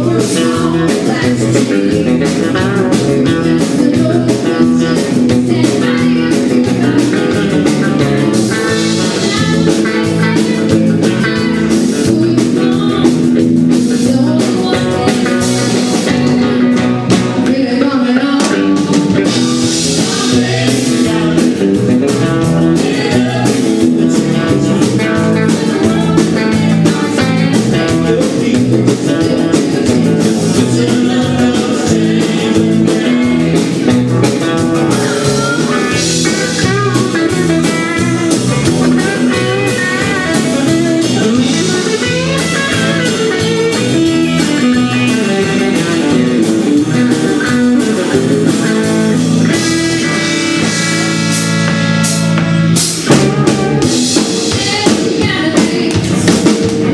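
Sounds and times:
drum beat: 0:00.0 - 0:17.6, 0:18.5 - 0:56.9
bass guitar: 0:00.0 - 0:56.9
electric guitar: 0:00.0 - 0:56.9.

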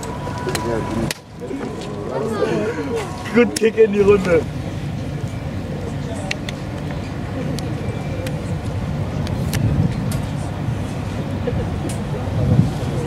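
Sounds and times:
faint distant voices: 0:00.0 - 0:13.0
steady low rumble: 0:00.0 - 0:13.0.

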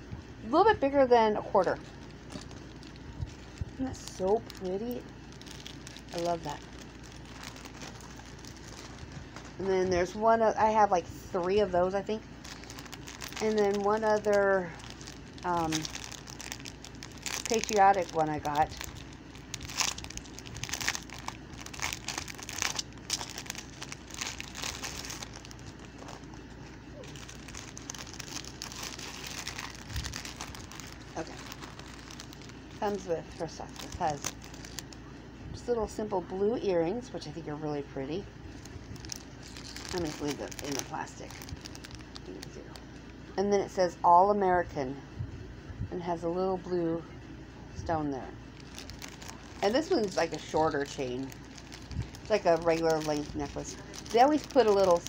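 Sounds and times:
plastic bag crinkling: 0:01.4 - 0:35.0, 0:38.5 - 0:43.1, 0:48.5 - 0:55.0
crackling handling noise: 0:01.4 - 0:35.3, 0:38.5 - 0:43.3, 0:48.4 - 0:55.0.

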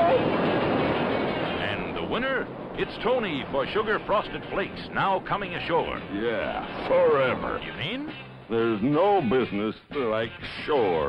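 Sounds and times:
wave crashing: 0:00.0 - 0:08.6.

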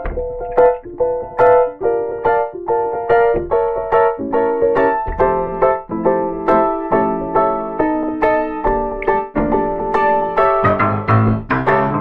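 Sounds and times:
piano notes and chords: 0:00.0 - 0:12.0.

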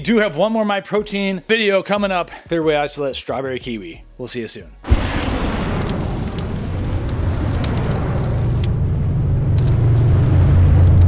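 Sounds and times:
sudden impact hit: 0:04.8 - 0:11.0
deep rumble with crackling: 0:04.9 - 0:11.0.

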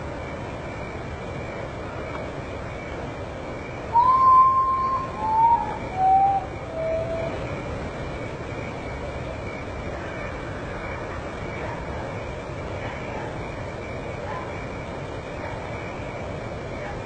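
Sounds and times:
bird whistling descending notes: 0:03.9 - 0:07.5.

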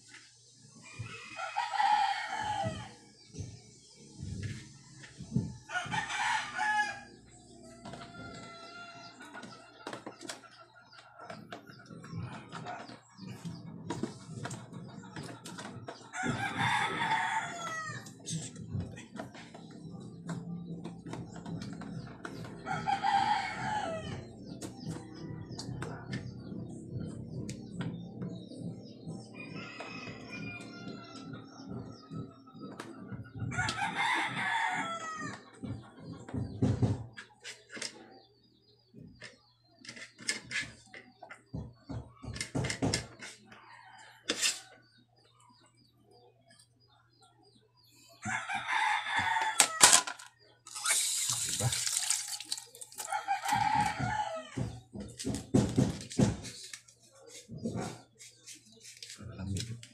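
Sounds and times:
roosters crowing: 0:00.8 - 0:03.5, 0:05.0 - 0:27.8, 0:28.6 - 0:37.2, 0:48.1 - 0:56.4.

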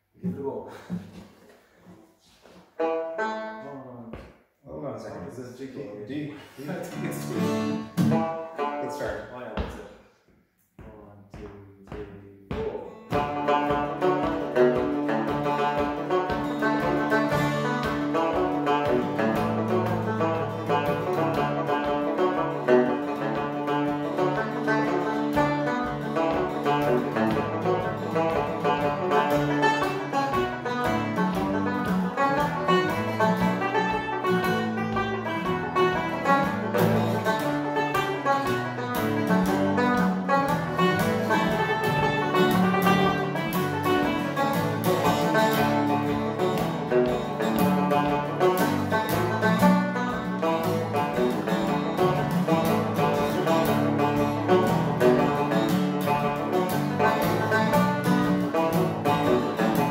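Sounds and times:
banjo picking melody: 0:00.0 - 0:04.3, 0:06.3 - 0:10.0, 0:11.8 - 0:59.9
acoustic guitar strumming: 0:06.4 - 0:09.9, 0:11.9 - 0:59.9.

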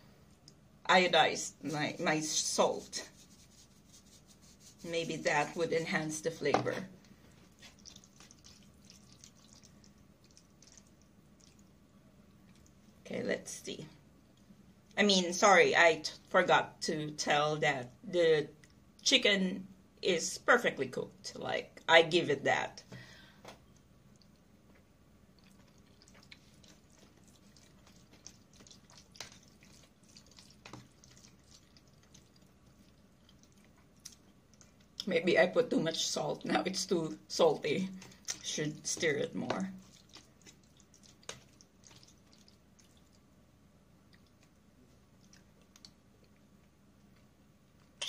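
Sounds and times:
chewing food: 0:07.0 - 0:13.0, 0:23.7 - 0:35.1, 0:37.9 - 0:43.4, 0:44.0 - 0:48.0
metal fork stirring in plastic tray: 0:25.6 - 0:33.6.

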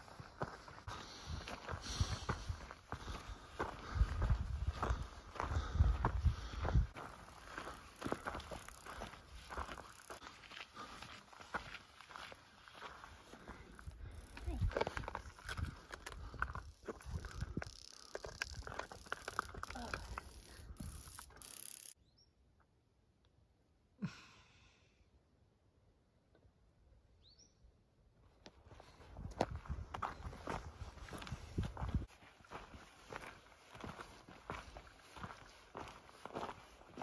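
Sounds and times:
footsteps on gravel trail: 0:00.0 - 0:22.0, 0:28.5 - 0:37.0.

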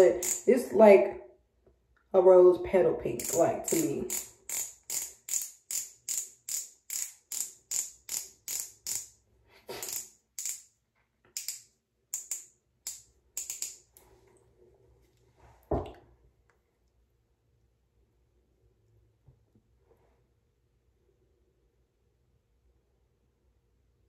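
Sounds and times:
twist pen base clicking: 0:00.1 - 0:00.5, 0:03.2 - 0:09.1, 0:09.8 - 0:10.7, 0:11.3 - 0:13.9.

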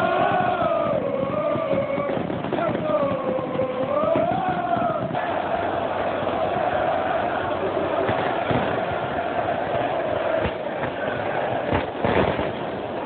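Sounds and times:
firecracker bangs: 0:00.0 - 0:07.2, 0:07.9 - 0:13.0
crowd chanting in unison: 0:00.0 - 0:13.0.

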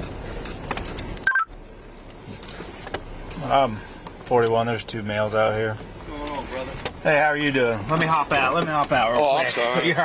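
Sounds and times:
vehicle cabin noise: 0:00.0 - 0:10.0
radio push-to-talk beep: 0:01.3 - 0:01.5.

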